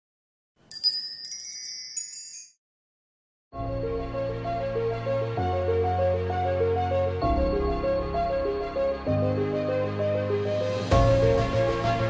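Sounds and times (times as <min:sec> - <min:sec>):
high tinkling chime: 0:00.6 - 0:02.6.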